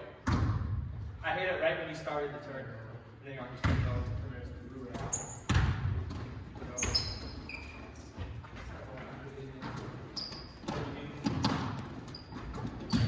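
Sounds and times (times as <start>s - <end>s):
basketballs bouncing on wooden floor: 0.2s - 1.0s, 4.9s - 8.8s, 9.5s - 13.0s
sneaker squeaks: 4.9s - 8.8s, 9.5s - 13.0s.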